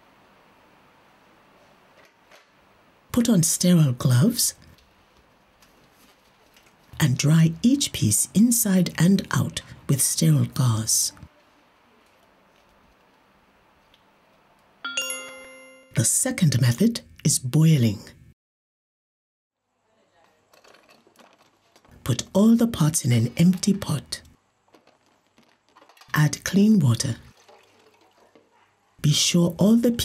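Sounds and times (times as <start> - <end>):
struck chime ringing: 14.8 - 16.0
water poured into metal pot: 27.2 - 28.5.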